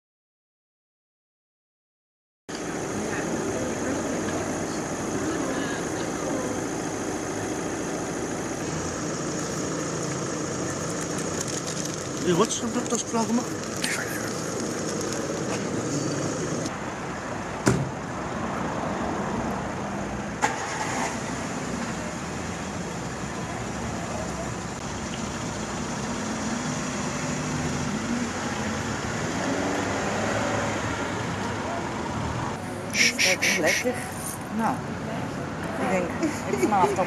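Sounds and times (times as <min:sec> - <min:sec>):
motor vehicle noise: 0:02.5 - 0:37.0
indistinct voices: 0:32.6 - 0:34.8.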